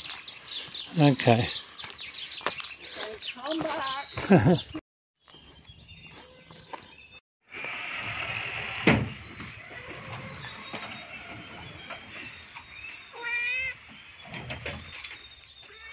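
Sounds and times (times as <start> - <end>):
cat meowing: 13.1 - 13.8, 15.7 - 15.9.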